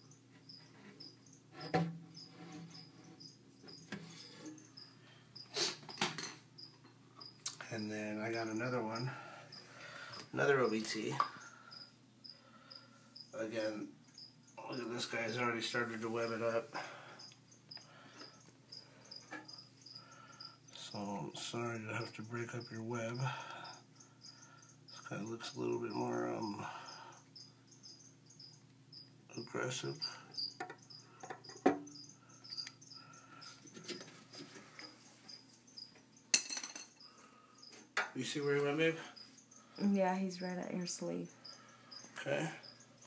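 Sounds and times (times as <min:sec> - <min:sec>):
cricket chirping: 0:00.0 - 0:43.0.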